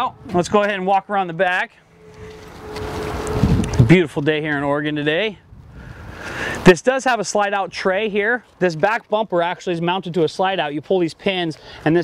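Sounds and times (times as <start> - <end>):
wind buffeting microphone: 2.0 - 6.6.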